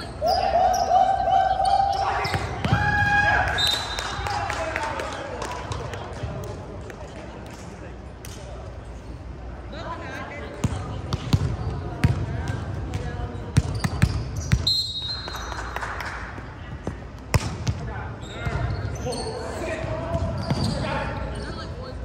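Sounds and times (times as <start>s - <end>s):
sneaker squeak: 0.0s - 0.9s, 1.6s - 2.7s, 12.9s - 15.6s, 18.2s - 21.9s
players' voices: 0.0s - 22.0s
volleyball hitting hardwood court: 10.6s - 14.7s, 16.8s - 17.8s.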